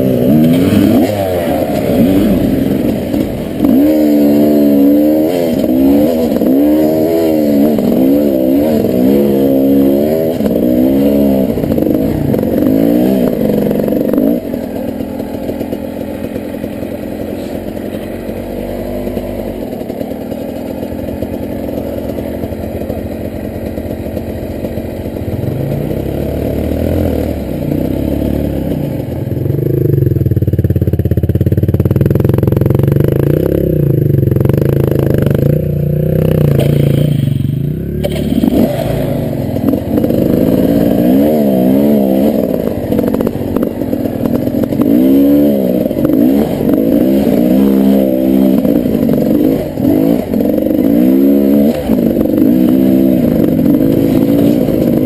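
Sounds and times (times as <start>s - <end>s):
dirt bike engine revving: 0.0s - 30.3s, 31.4s - 55.0s.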